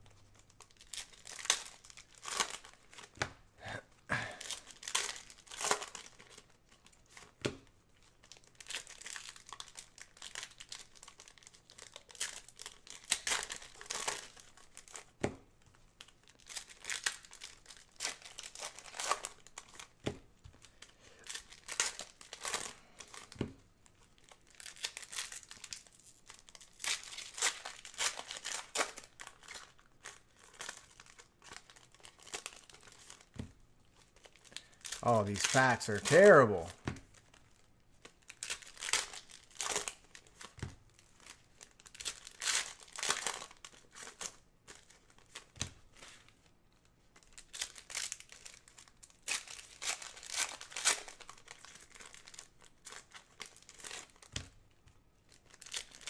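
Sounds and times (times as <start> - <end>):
foil wrappers crinkling and tearing: 0.4 - 3.2, 4.1 - 56.0
cards being handled: 24.6 - 37.4.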